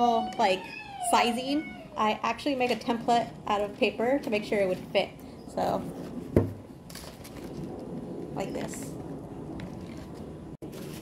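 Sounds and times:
paper rustling: 9.8 - 11.0.

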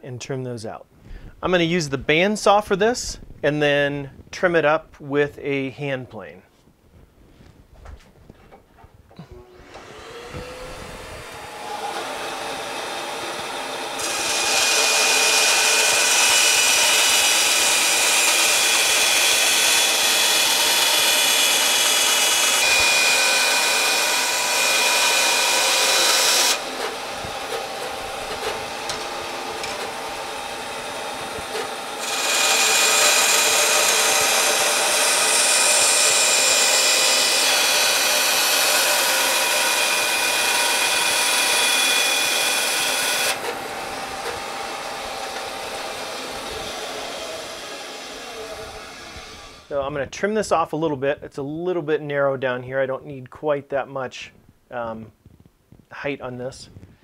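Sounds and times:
band saw cutting wood: 9.4 - 49.8.

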